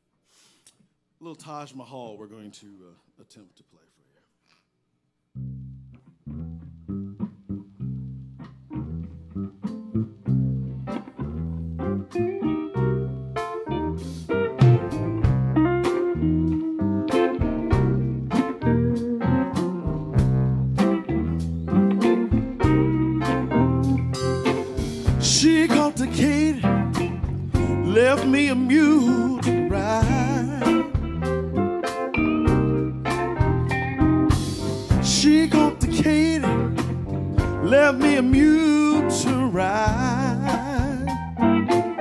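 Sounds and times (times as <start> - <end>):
live blues band playing: 8.5 - 42.0.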